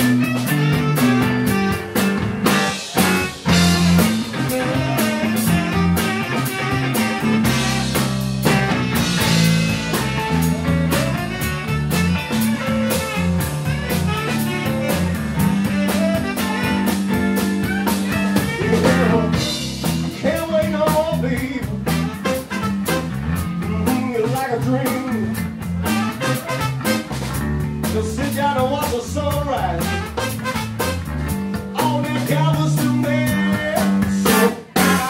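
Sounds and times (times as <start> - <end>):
tenor saxophone: 0.0 - 23.4, 25.8 - 27.4, 29.8 - 31.3, 33.3 - 35.0
electric guitar: 0.0 - 35.0
live blues band playing: 0.0 - 35.0.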